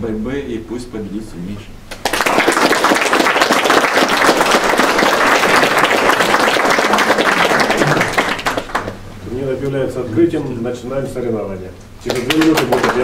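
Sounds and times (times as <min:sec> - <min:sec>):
people applauding: 0:01.9 - 0:09.0, 0:12.0 - 0:13.0.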